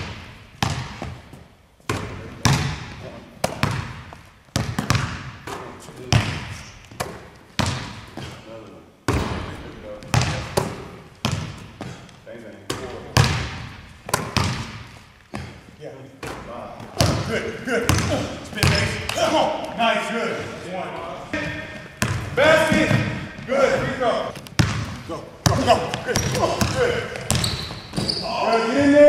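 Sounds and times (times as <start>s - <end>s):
basketball bouncing on wooden floor: 0.0s - 1.3s, 1.9s - 8.3s, 9.1s - 12.1s, 12.7s - 15.6s, 16.2s - 17.3s, 17.9s - 19.2s, 21.5s - 28.2s.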